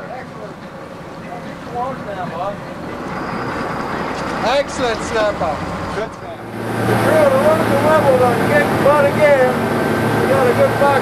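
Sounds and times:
boat engine humming: 0:00.0 - 0:11.0.

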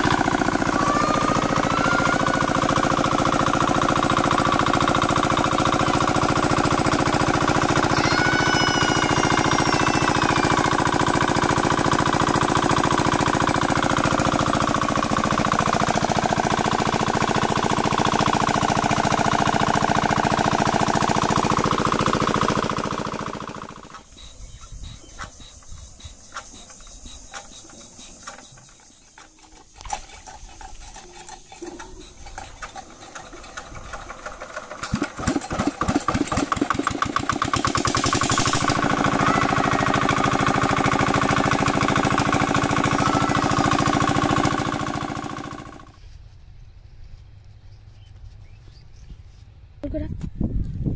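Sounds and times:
engine cranking: 0:00.0 - 0:46.0
diesel engine running: 0:00.0 - 0:46.3.

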